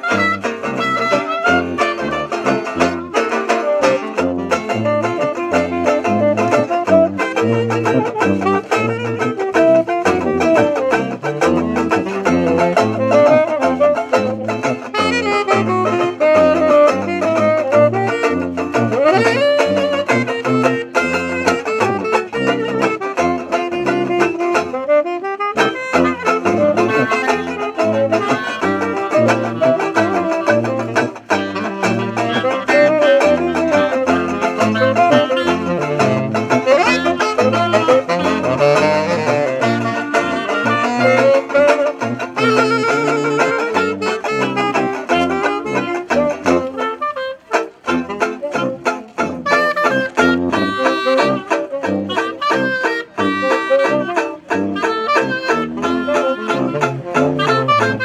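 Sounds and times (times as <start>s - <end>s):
sousaphone bass line: 0.0s - 24.7s, 25.6s - 58.0s
banjo: 0.0s - 58.0s
clarinet: 0.0s - 58.0s
tenor saxophone: 0.0s - 58.0s.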